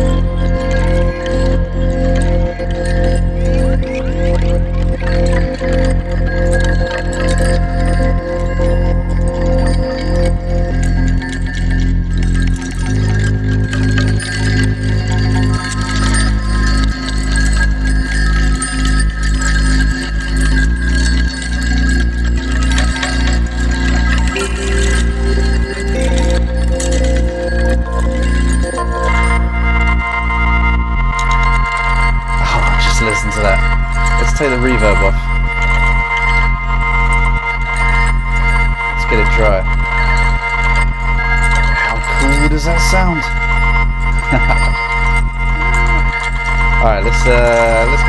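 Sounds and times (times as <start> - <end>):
keyboard chords: 0.0 - 48.0
looped sample with delay and reverb: 0.0 - 48.0
deep bass notes: 41.8 - 45.6
drum loop: 44.2 - 44.7.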